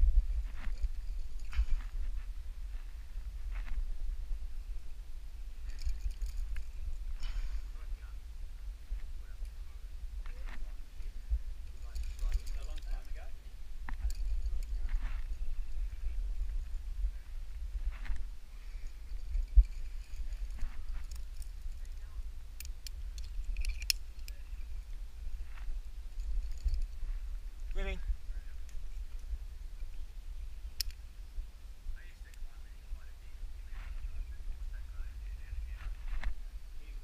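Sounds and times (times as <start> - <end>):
low microphone rumble: 0.0 - 37.0
carabiners clinking: 0.5 - 2.0, 5.6 - 7.8, 11.6 - 15.8, 18.1 - 27.2.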